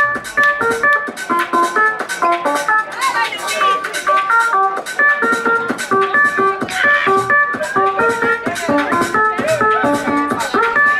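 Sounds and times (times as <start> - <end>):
steady beat with crisp ticks: 0.0 - 10.9
synthesizer repeating stepped notes: 0.0 - 10.9.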